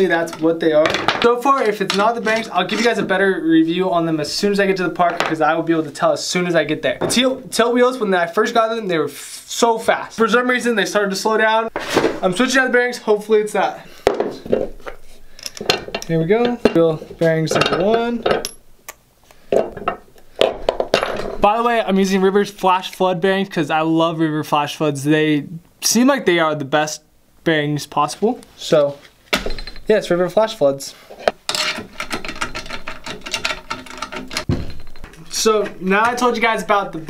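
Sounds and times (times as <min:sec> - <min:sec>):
metallic clinks and knocks: 0:14.5 - 0:16.9, 0:17.5 - 0:18.7, 0:19.5 - 0:21.4, 0:29.3 - 0:30.0, 0:31.4 - 0:36.3.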